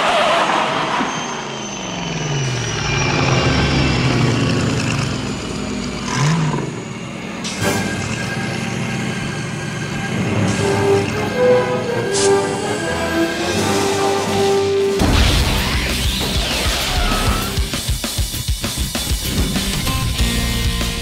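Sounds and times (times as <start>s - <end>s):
car driving by: 0.0s - 17.7s.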